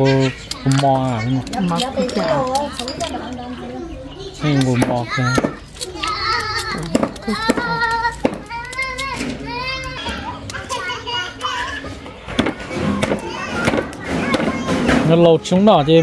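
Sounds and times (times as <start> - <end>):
children chattering and calling: 0.0 - 16.0.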